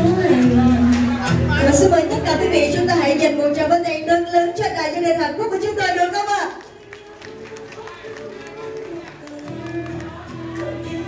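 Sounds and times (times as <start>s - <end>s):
faint voices in a hall: 0.0s - 11.0s
music with long held notes: 6.8s - 11.0s.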